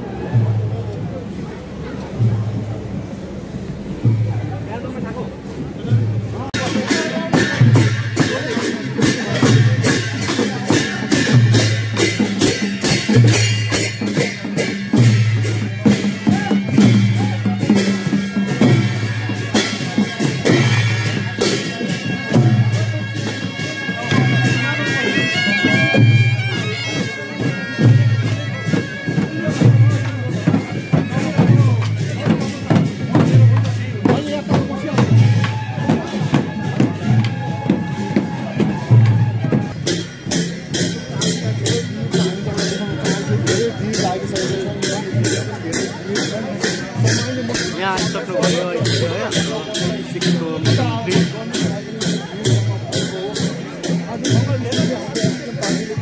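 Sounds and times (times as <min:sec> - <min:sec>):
crowd voices: 0:00.0 - 0:56.0
drum beating steadily: 0:00.0 - 0:56.0.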